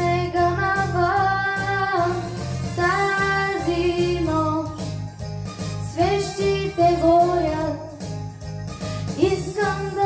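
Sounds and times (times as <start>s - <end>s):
girl singing into a microphone: 0.0s - 2.2s, 2.8s - 4.8s, 9.2s - 10.0s
instrumental backing track: 0.0s - 10.0s.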